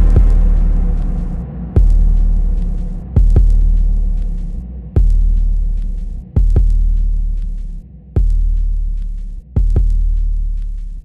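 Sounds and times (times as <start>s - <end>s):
deep booming bass drum hits: 0.0s - 7.6s, 8.2s - 9.0s, 9.6s - 10.4s.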